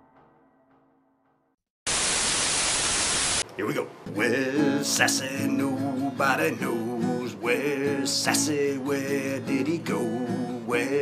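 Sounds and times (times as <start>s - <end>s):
loud static hiss: 1.9s - 4.1s.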